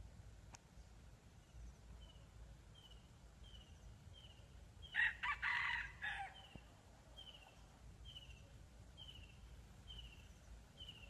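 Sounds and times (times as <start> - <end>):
rooster crowing: 4.9 - 6.5
faint high chirp: 6.4 - 11.0.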